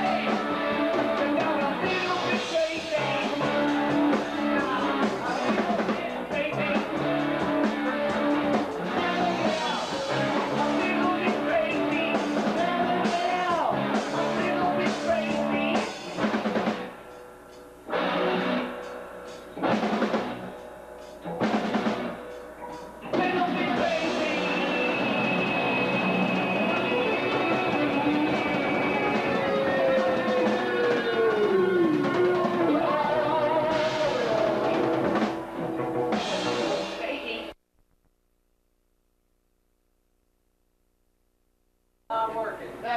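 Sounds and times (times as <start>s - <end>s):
bass guitar: 0.0s - 37.6s
drum kit: 0.0s - 37.6s
electric guitar: 0.0s - 37.6s.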